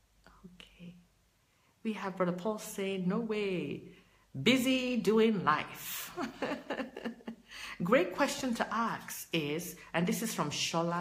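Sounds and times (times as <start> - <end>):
woman whispering: 0.2 - 1.1
woman speaking: 1.8 - 11.0.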